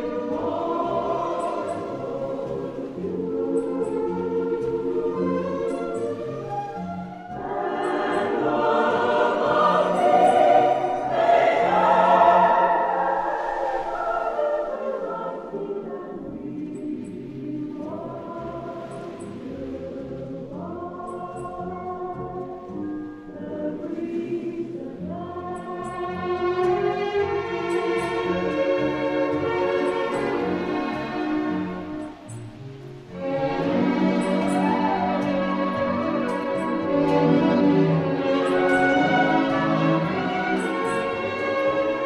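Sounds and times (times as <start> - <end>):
orchestral accompaniment: 0.0 - 16.6, 20.6 - 42.0
choir singing: 0.0 - 42.0.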